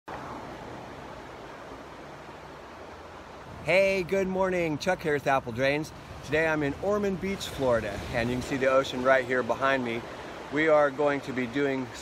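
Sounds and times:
ocean surf washing on beach: 0.1 - 12.0.

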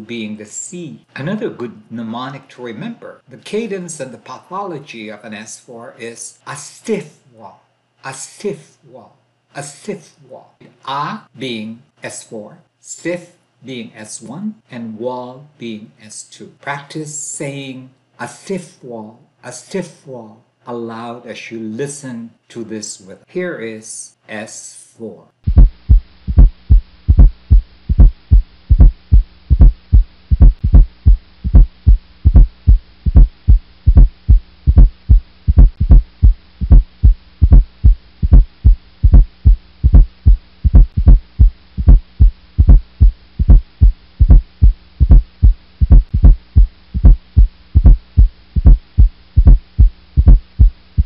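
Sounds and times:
faint steady hum: 0.0 - 51.0
heartbeat thuds: 25.5 - 51.0.

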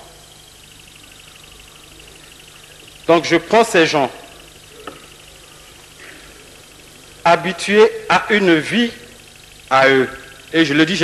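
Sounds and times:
faint low hum: 0.0 - 11.0
recording hiss: 0.0 - 11.0.

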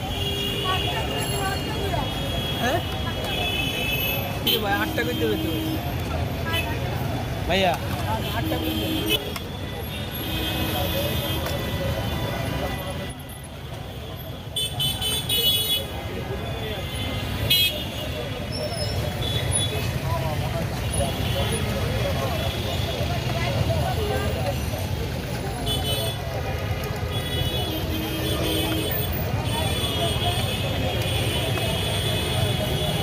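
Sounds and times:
passing traffic rumble: 0.0 - 33.0.

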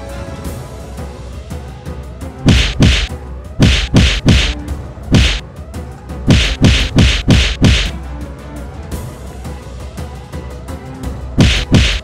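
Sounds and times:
background music: 0.0 - 12.0
punch sound effects: 2.4 - 5.4, 6.3 - 7.9, 11.4 - 12.0.

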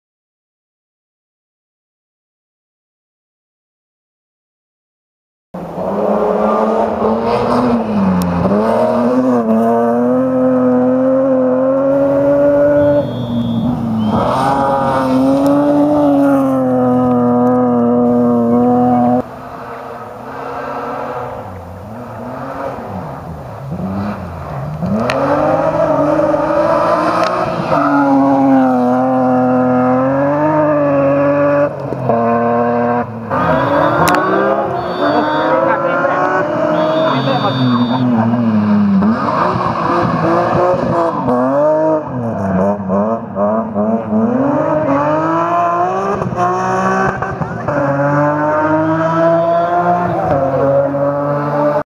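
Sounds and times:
rally car engine at high revs: 5.6 - 51.8.

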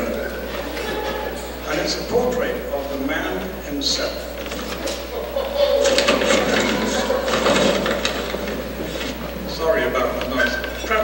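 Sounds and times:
overlapping voices: 0.0 - 11.0
rapid clatter: 5.7 - 11.0.

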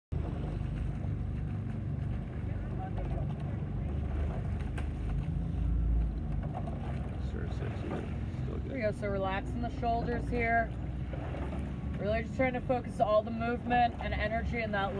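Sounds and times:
outboard motor running: 0.1 - 14.9.

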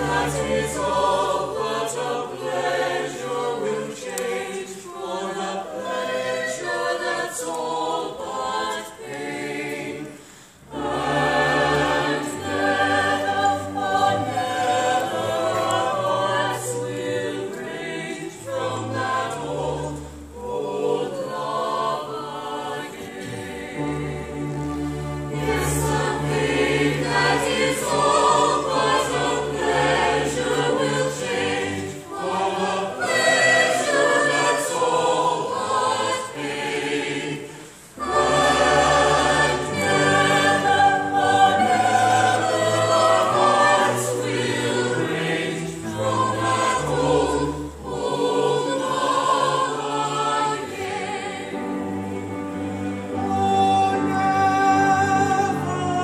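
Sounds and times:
chorus and soloists singing: 0.0 - 56.0
orchestra playing: 23.4 - 32.4, 37.9 - 49.4, 51.5 - 56.0.

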